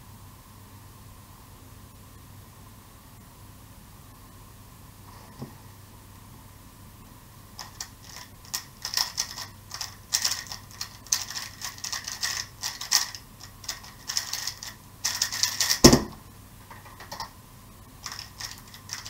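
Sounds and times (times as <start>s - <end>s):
speedcube layers clacking: 7.6s - 16.1s, 18.0s - 19.0s
cube thumping down: 11.2s - 16.2s.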